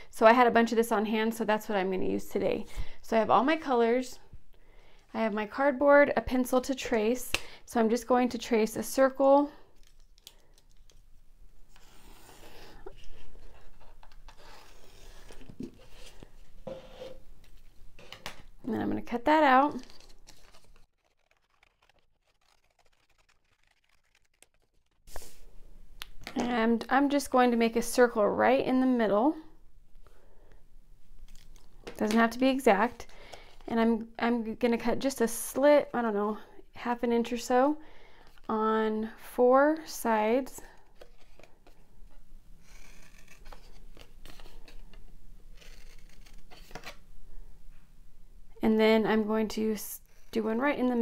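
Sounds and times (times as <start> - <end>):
cardboard handling: 40.9 - 41.8
scissors cutting cardboard: 42.6 - 44.5, 45.5 - 47.0.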